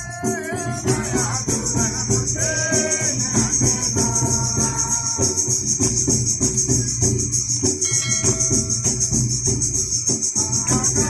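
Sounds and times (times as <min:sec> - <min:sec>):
barrel hand drum: 0:00.0 - 0:11.0
jingling clappers: 0:00.0 - 0:11.0.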